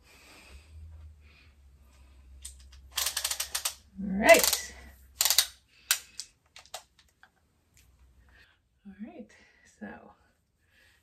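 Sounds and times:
tape measure clicks: 2.4s - 7.1s.

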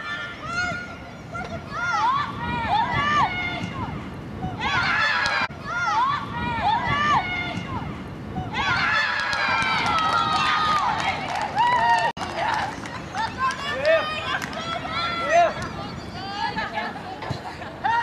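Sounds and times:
women cheering and screaming: 8.5s - 15.5s.

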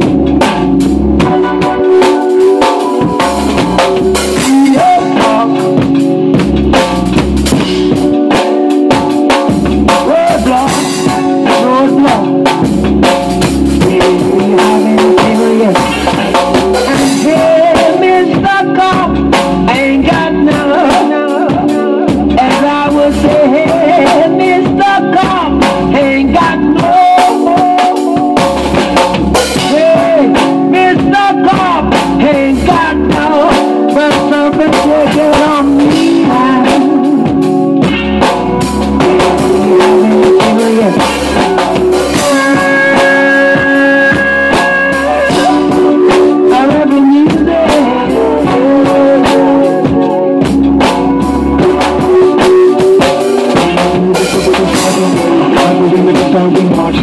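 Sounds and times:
person singing: 0.0s - 57.0s
reggae song with drums: 0.0s - 57.0s.

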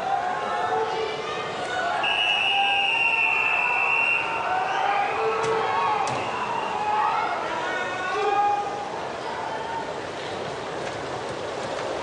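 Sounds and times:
crowd voices in pool hall: 0.0s - 12.0s
referee's whistle long blast: 2.0s - 4.9s.

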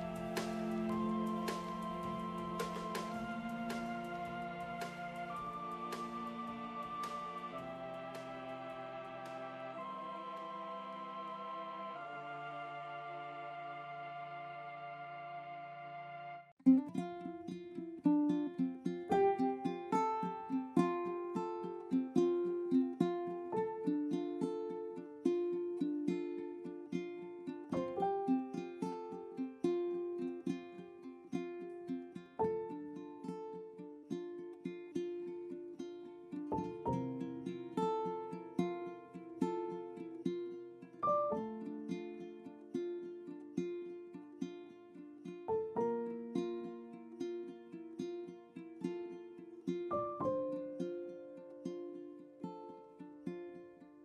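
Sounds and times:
plucked-string tune: 0.0s - 54.0s.

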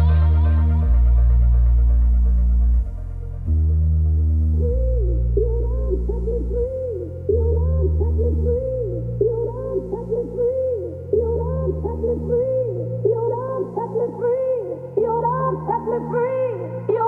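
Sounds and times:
deep synth bass: 0.0s - 17.0s.

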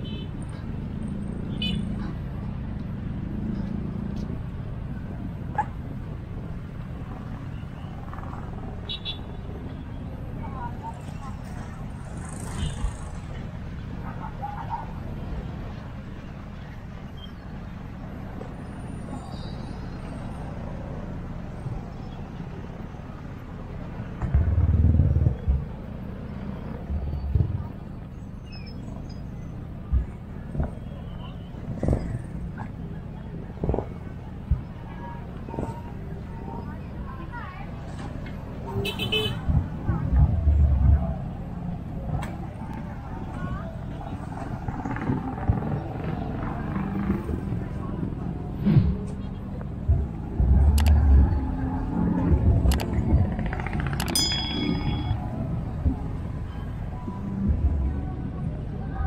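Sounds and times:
faint distant voices: 0.0s - 59.0s
traffic rumble: 0.0s - 59.0s
wind: 0.0s - 59.0s
loud low rumble: 24.2s - 27.9s, 44.1s - 54.0s.

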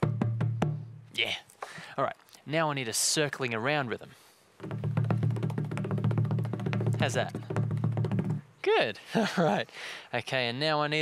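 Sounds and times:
hand drum strikes: 0.0s - 0.9s, 4.6s - 8.4s.

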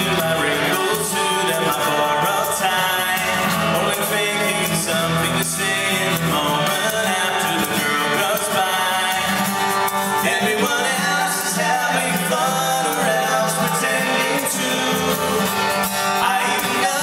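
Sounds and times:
acoustic guitar strumming: 0.0s - 17.0s
person singing: 0.0s - 17.0s.

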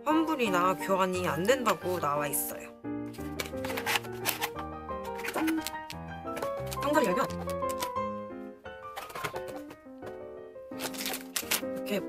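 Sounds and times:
background music: 0.0s - 12.0s
paper rustling: 3.1s - 8.0s, 8.8s - 9.8s, 10.7s - 12.0s
cardboard box being opened: 3.2s - 7.9s, 10.8s - 11.7s.

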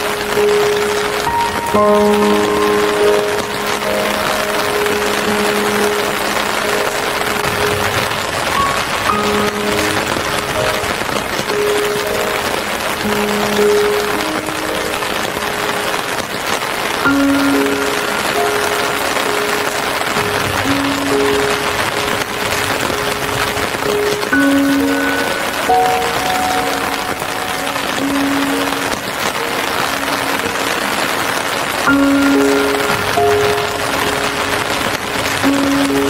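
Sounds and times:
soft relaxation music: 0.0s - 36.0s
steady rain hiss: 0.0s - 36.0s.

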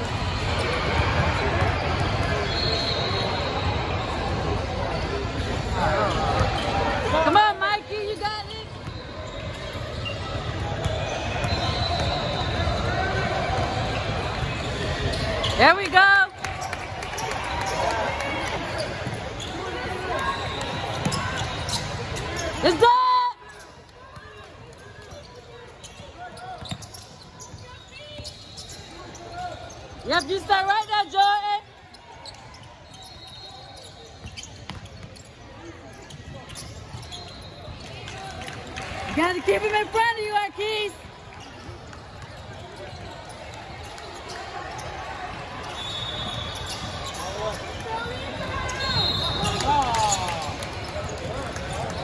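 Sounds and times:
voices of players and spectators: 0.0s - 52.0s
shoe squeals: 0.2s - 7.4s, 8.0s - 15.8s, 16.6s - 38.2s, 41.0s - 52.0s.

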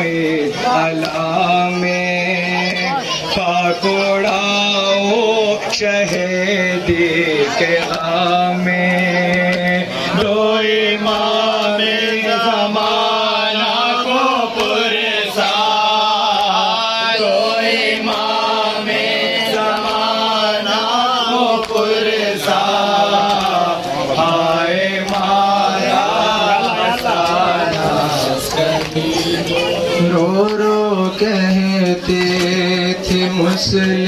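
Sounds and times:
man chanting a lament: 0.0s - 34.0s.

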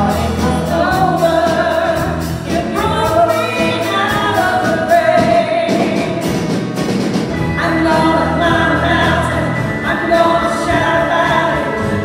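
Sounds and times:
acoustic guitar and band: 0.0s - 12.0s.

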